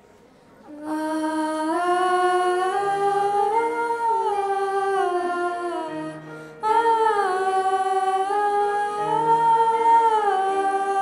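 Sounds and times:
girls singing in harmony: 0.7s - 11.0s.

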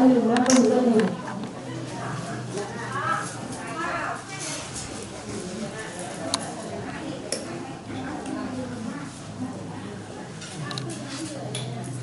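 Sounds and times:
outdoor background noise: 0.0s - 12.0s
people talking at a distance: 0.0s - 12.0s.

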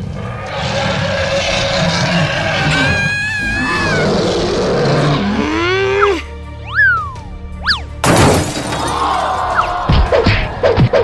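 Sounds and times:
cartoon dragon roar: 0.0s - 6.2s
background music: 0.0s - 11.0s.

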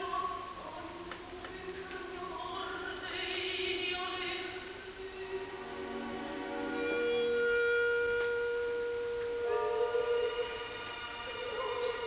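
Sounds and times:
opera singer holding long note: 6.8s - 12.0s.

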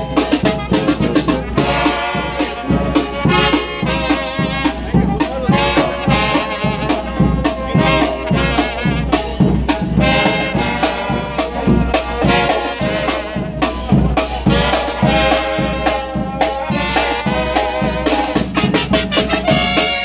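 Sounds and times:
bass drum and snare beat: 0.0s - 20.0s
sousaphone bass line: 0.0s - 20.0s
trumpets and trombones melody: 0.0s - 20.0s.

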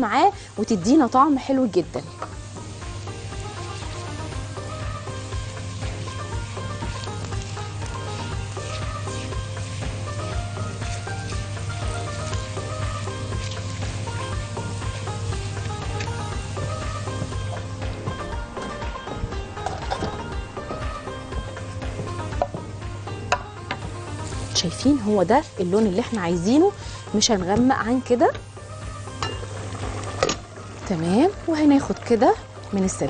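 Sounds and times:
background music: 0.0s - 33.0s
garlic sizzling in a pan: 0.0s - 33.0s.

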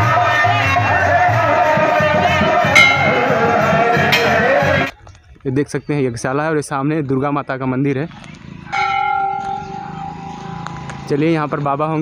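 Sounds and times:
temple bell ringing: 2.8s - 4.3s, 8.7s - 10.8s.

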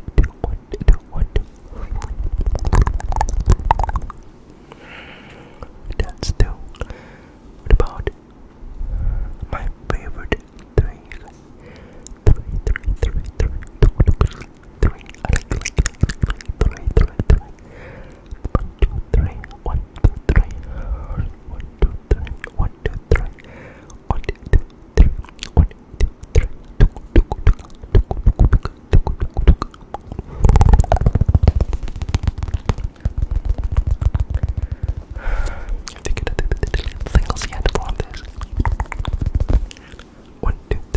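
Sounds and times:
sharp clicks and taps: 24.3s - 35.2s
low thumps on microphone: 30.4s - 35.2s
clicks and taps on microphone: 30.7s - 35.1s.

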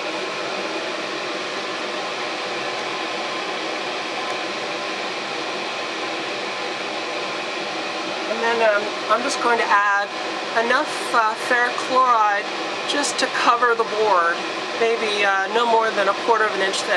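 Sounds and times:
exhaust fan running: 0.0s - 16.9s.

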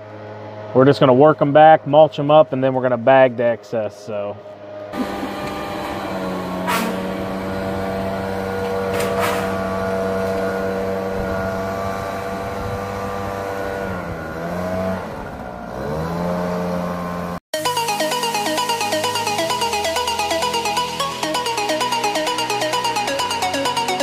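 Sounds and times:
leaf blower engine running: 5.0s - 24.0s
electronic dance music: 17.5s - 24.0s.

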